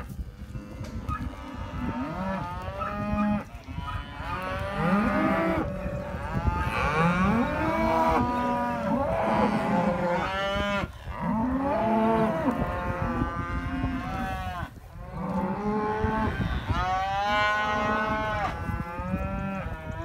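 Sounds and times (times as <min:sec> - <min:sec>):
cattle mooing: 0:00.8 - 0:20.0.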